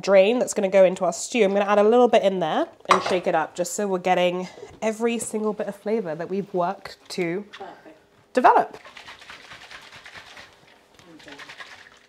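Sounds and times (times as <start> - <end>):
liquid sloshing in a shaken jar: 8.7 - 12.0.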